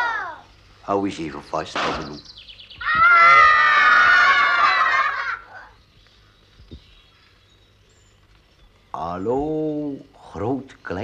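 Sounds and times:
children shouting: 0.0 - 0.5, 2.8 - 5.8
faint hiss: 0.0 - 11.0.

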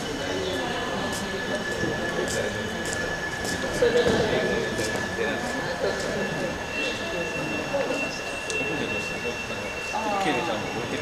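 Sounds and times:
people talking indistinctly: 0.0 - 11.0
steady high-pitched tones: 0.0 - 11.0.

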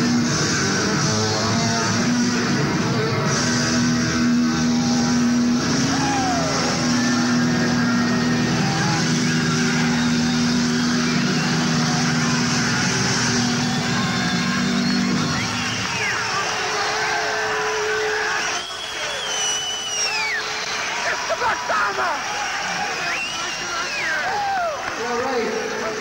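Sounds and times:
distorted electric guitars droning: 0.0 - 18.5.

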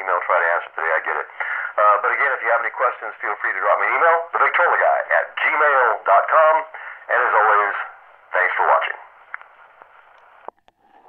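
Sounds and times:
man's voice from phonograph: 0.0 - 9.2.

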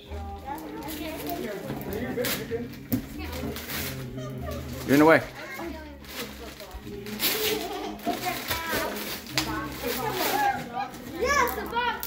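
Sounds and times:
children chattering: 0.0 - 12.0
wrapping paper tearing and rustling: 0.0 - 12.0.

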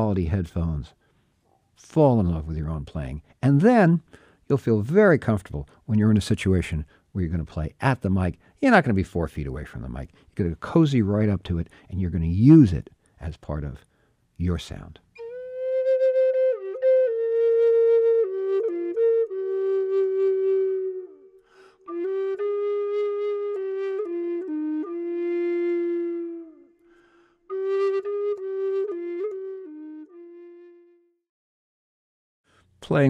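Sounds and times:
short breaths: 1.0 - 1.7, 4.0 - 4.5, 13.8 - 14.3, 21.4 - 21.9, 26.8 - 27.5
flute melody: 15.2 - 31.3.

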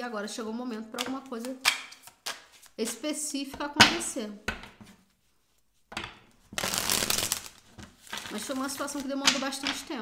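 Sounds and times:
cards being shuffled: 6.5 - 9.8.

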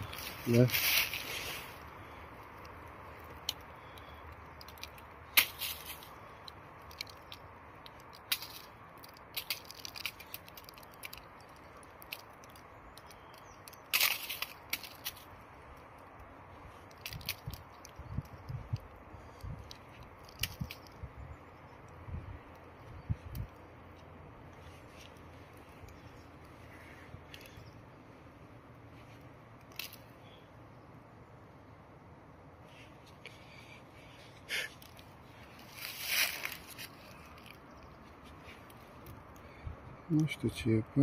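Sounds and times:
soil clod cracking: 0.0 - 26.6, 29.6 - 30.1
soil crumbling between fingers: 0.0 - 27.8, 32.7 - 39.6.

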